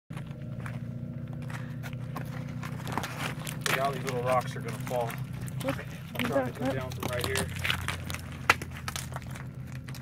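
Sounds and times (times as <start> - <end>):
steady low hum: 0.1 - 10.0
loose rock clicking and knocking: 2.0 - 10.0
man talking: 3.7 - 5.2, 6.2 - 7.5.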